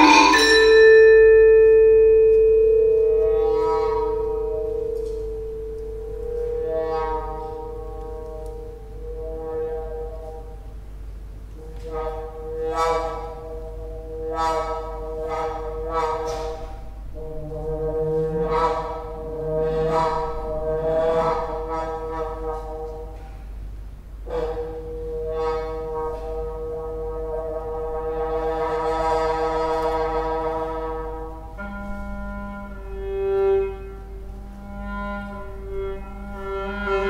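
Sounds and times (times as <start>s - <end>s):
mallet struck metal note ringing: 0.0s - 6.2s
sustained high ensemble notes: 0.0s - 7.7s
brass instrument long note: 0.0s - 10.7s, 11.6s - 37.0s
low sustained tone: 0.0s - 37.0s.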